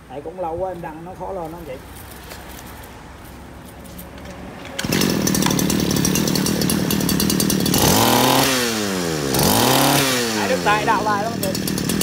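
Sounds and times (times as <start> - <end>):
brush-cutter engine running: 4.7 - 12.0.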